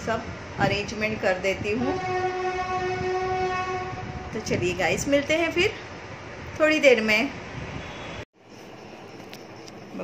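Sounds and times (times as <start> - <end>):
woman speaking: 0.0 - 2.1, 4.3 - 5.8, 6.6 - 7.4.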